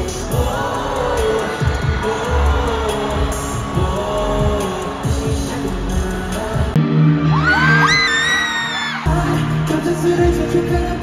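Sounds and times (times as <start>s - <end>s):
live pop song over sound system: 0.0s - 11.0s.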